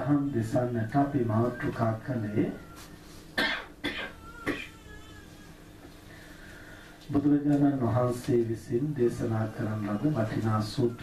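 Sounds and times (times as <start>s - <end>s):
low background noise: 0.0s - 11.0s
man coughing: 3.4s - 4.8s.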